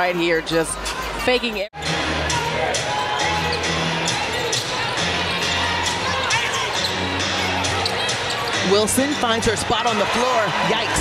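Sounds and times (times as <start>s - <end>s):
arena music with low bass: 1.8s - 11.0s.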